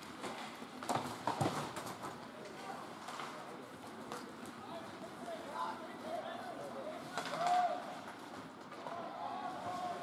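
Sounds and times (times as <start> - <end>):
hockey sticks and puck clacking: 0.0 - 2.2
arena background noise: 0.0 - 10.0.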